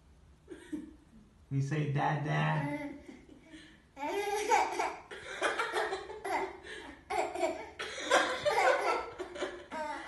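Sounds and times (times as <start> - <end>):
baby laughing: 2.6 - 10.0.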